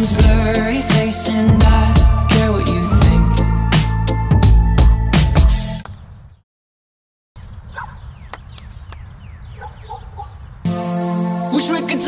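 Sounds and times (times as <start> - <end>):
music: 0.0 - 5.8, 10.7 - 12.0
birds chirping: 5.8 - 6.4, 7.4 - 10.7.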